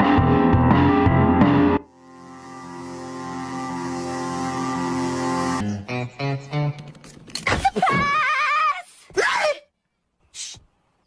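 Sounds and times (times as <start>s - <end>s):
cartoon character cry falling in pitch: 7.5s - 9.6s.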